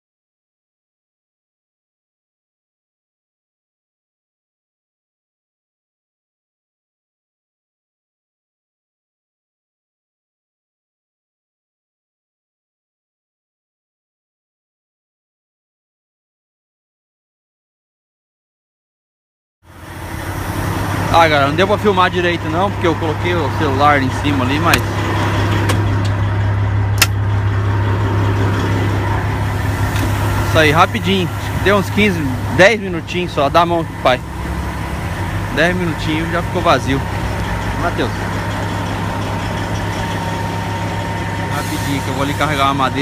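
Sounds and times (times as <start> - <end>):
diesel engine idling: 19.7 - 43.0.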